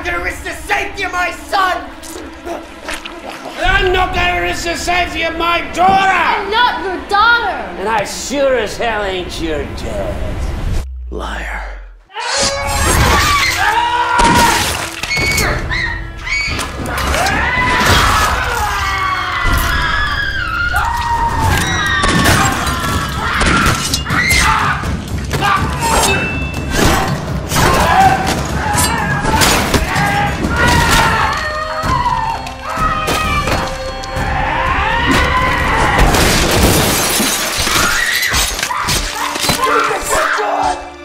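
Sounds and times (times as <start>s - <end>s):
people shouting and grunting: 0.0s - 7.8s, 12.0s - 41.0s
dramatic background music: 0.0s - 11.8s, 12.5s - 41.0s
crashing and shattering: 12.9s - 15.6s, 35.1s - 39.8s.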